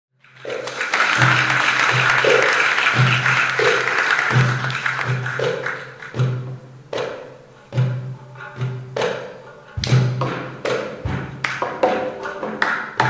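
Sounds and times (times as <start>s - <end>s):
audience applause: 0.2s - 6.3s
goblet drum strokes: 0.4s - 13.0s.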